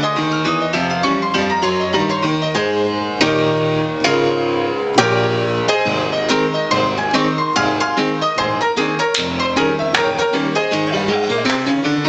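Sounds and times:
upright piano playing ragtime: 0:00.0 - 0:12.0.

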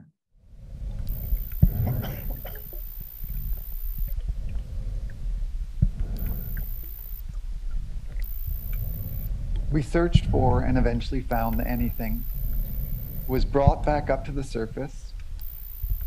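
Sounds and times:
muffled underwater rumble: 0:00.4 - 0:16.0
faint high whine: 0:00.6 - 0:05.1, 0:05.9 - 0:16.0.

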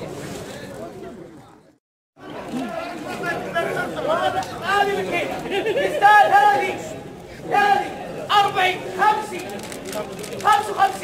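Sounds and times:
men talking and chattering: 0:00.0 - 0:11.0.

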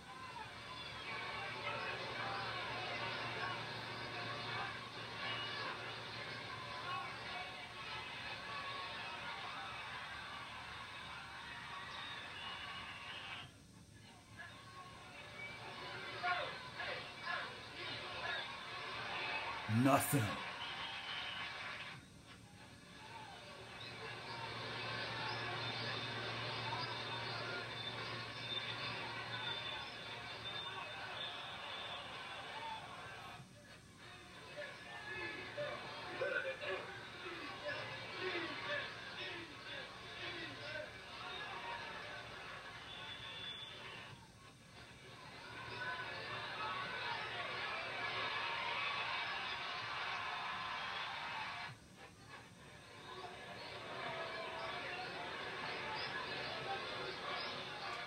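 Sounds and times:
stadium crowd din: 0:00.0 - 0:13.5, 0:14.8 - 0:22.0, 0:34.0 - 0:58.0
music through television speaker: 0:00.0 - 0:58.0
indistinct voices: 0:19.7 - 0:20.4.

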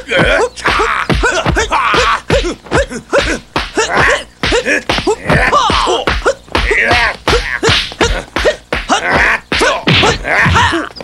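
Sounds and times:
fighters shouting grunts: 0:00.0 - 0:10.9
punch and block impacts: 0:03.2 - 0:10.8.

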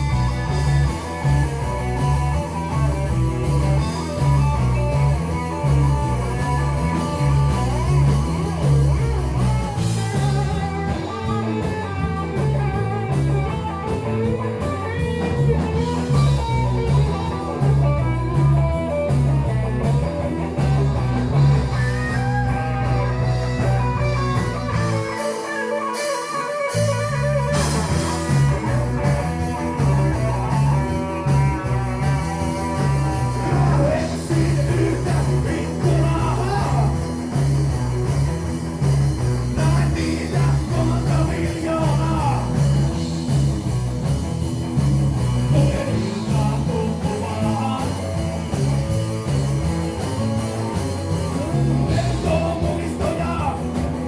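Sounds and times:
live rock band playing: 0:00.0 - 0:54.0.

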